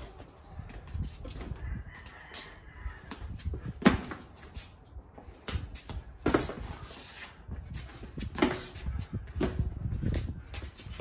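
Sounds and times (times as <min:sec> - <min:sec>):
sneakers shuffling on concrete: 0:00.0 - 0:11.0.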